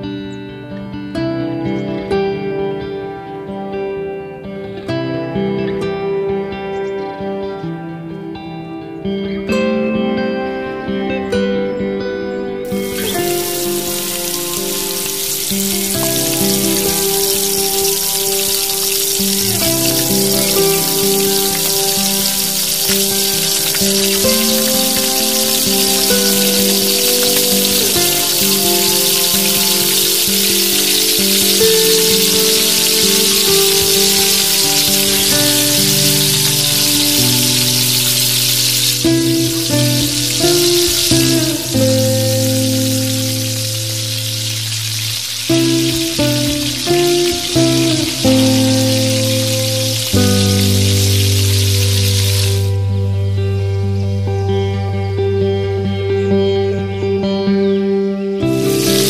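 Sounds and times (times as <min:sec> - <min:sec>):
music with long held notes: 0:00.0 - 0:59.0
hot oil sizzling: 0:12.7 - 0:53.4, 0:58.4 - 0:59.0.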